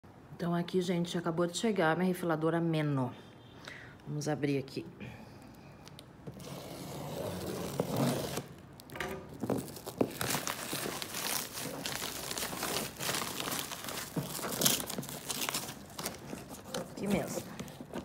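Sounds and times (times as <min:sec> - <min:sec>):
plastic film crinkling and tearing: 0:05.9 - 0:18.0.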